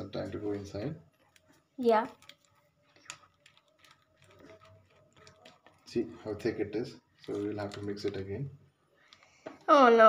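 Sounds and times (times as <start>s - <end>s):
spoon stirring in plastic strainer: 0.0s - 9.4s.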